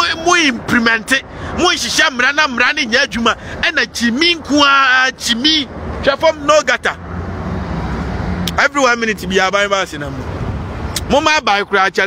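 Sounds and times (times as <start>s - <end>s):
road vehicle rumble: 0.0s - 12.0s.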